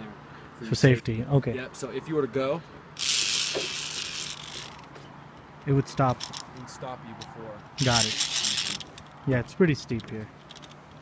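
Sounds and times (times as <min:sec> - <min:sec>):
zipline pulley whirring on cable: 0:03.0 - 0:04.9, 0:07.8 - 0:09.0.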